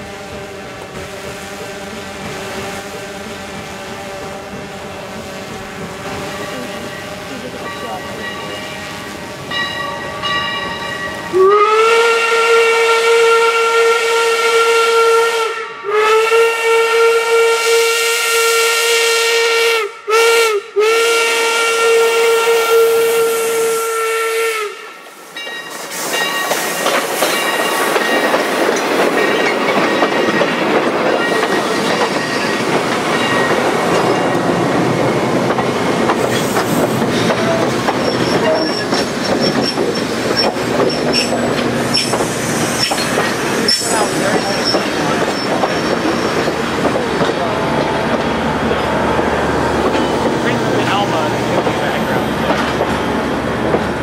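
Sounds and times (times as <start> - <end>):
passenger coaches rumbling past: 0.0 - 16.8, 24.6 - 54.0
steam locomotive whistle: 0.0 - 25.0, 36.2 - 46.6
train wheels clacking over rail joints: 25.4 - 54.0.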